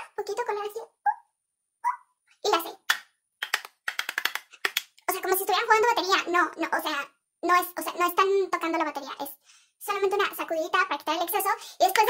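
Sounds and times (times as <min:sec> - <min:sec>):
woman speaking: 0:05.1 - 0:12.0.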